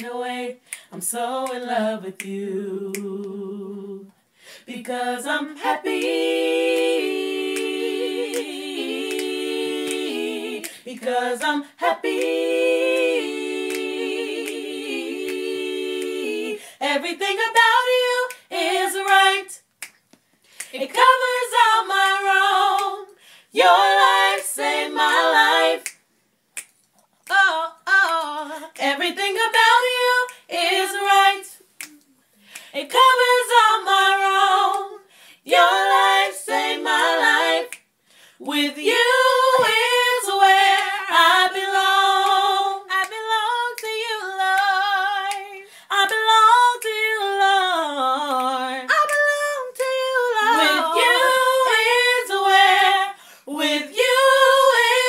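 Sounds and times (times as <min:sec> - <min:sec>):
young women singing: 0:00.0 - 0:19.6, 0:20.6 - 0:26.0, 0:27.3 - 0:32.0, 0:32.6 - 0:55.0.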